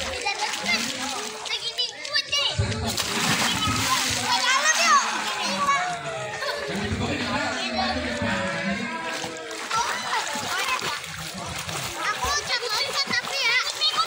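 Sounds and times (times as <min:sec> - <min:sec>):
children splashing in pool: 0:00.0 - 0:14.0
children calling out: 0:03.3 - 0:11.1, 0:11.9 - 0:14.0.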